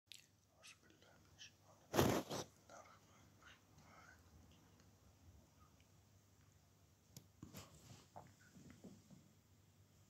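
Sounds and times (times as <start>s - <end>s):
person whispering faintly: 0.1s - 4.8s.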